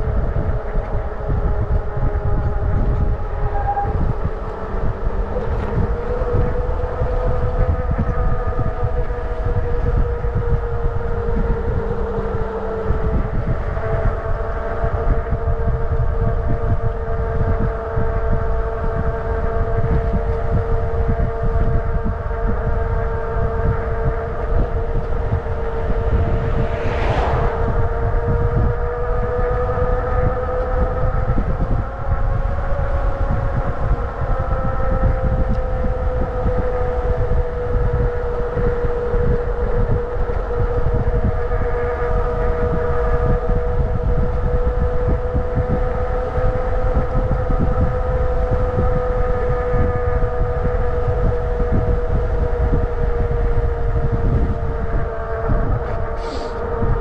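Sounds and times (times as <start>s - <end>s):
motorcycle engine cruising: 0.0s - 57.0s
wind rushing over microphone: 0.0s - 57.0s
brief whoosh: 24.4s - 29.6s.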